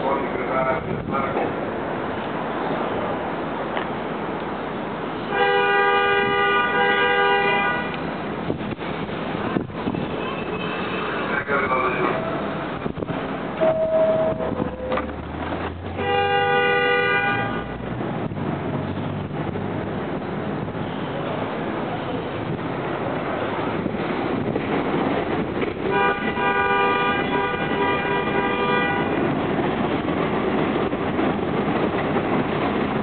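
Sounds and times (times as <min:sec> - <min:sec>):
subway train horn blasts: 0:05.3 - 0:08.0, 0:13.6 - 0:15.1, 0:15.9 - 0:17.9, 0:25.8 - 0:29.4
two-note door chime: 0:13.6 - 0:15.0.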